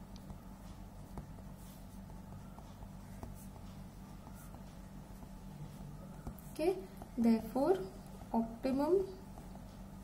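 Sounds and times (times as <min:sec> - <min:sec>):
low steady hum: 0:00.0 - 0:10.0
pen scratching on paper: 0:00.7 - 0:07.1.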